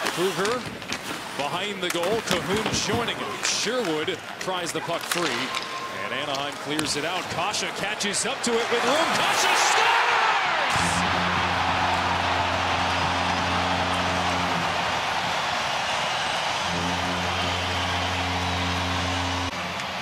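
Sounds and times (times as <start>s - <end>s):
crowd cheering: 5.6s - 20.0s
goal horn blasts: 10.7s - 19.5s.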